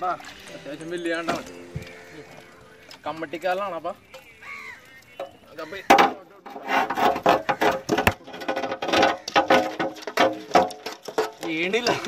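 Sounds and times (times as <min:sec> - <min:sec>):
net knocking in metal basin: 0:07.1 - 0:12.0.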